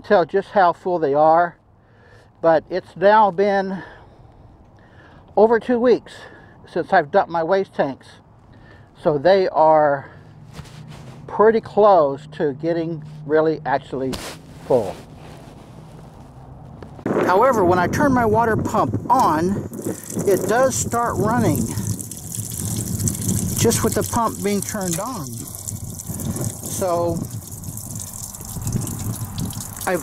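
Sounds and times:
outdoor background noise: 0.0s - 30.0s
water pouring and splashing: 19.1s - 30.0s.

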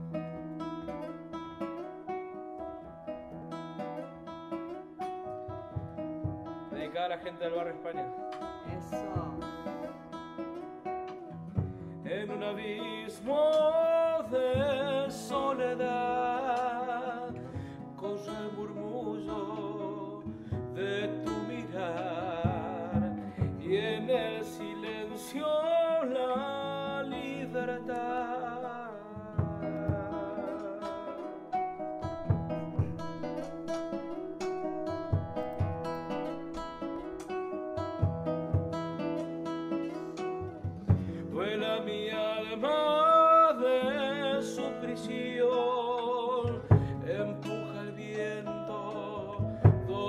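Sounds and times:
classical guitar: 0.0s - 50.0s
man singing folk song: 6.7s - 37.4s, 38.0s - 50.0s.

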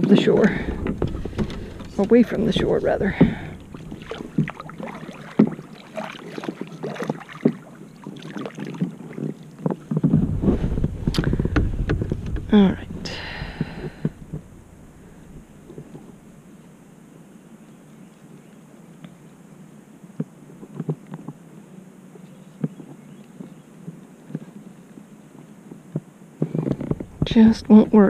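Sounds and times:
light knocks and clicks: 0.4s - 4.6s.

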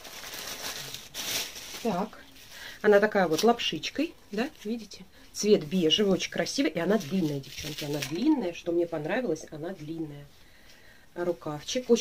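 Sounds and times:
plastic bag crinkling: 0.0s - 3.9s, 6.6s - 10.0s.

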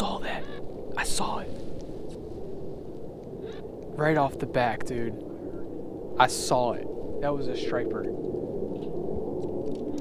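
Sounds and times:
low rushing noise: 0.0s - 10.0s.

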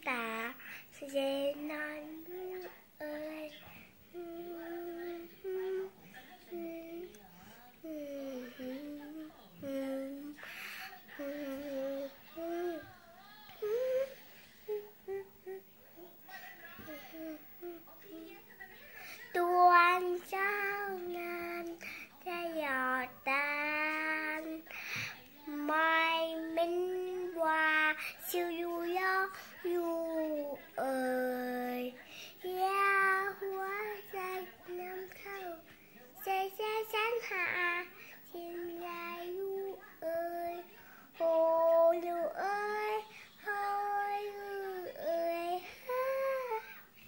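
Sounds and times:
girl singing into toy microphone: 19.4s - 35.6s, 36.2s - 46.6s.

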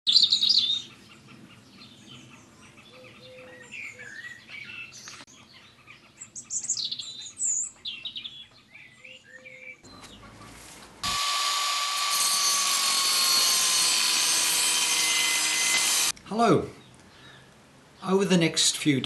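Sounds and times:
songbirds chirping: 0.1s - 11.0s, 16.1s - 19.0s.

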